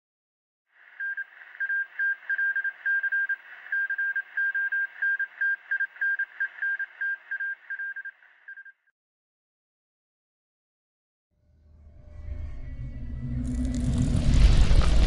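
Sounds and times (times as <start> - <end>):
radio static hiss: 0.8 - 8.6
high beep tone pulses: 0.9 - 8.8.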